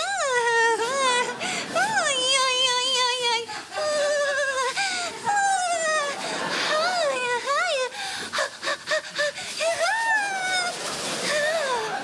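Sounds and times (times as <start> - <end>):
woman vocalising wordlessly: 0.0 - 10.8.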